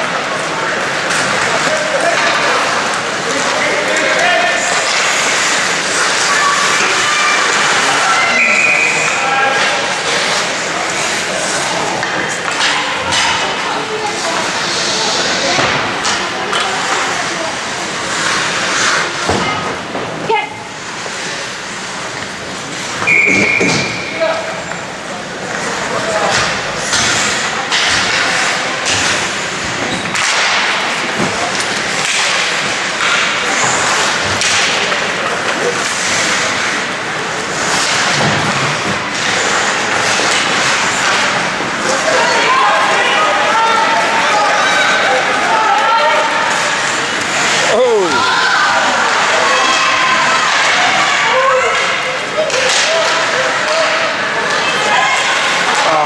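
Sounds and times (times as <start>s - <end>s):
rink crowd din: 0.0s - 56.0s
referee's whistle: 23.1s - 24.2s
hockey sticks and puck knocking: 30.1s - 42.0s
shouting voices: 39.2s - 56.0s.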